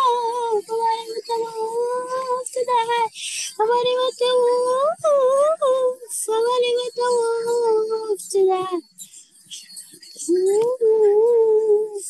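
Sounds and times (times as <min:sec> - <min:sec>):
breathy hiss: 0:03.1 - 0:03.6
high voice singing held notes: 0:10.2 - 0:12.0.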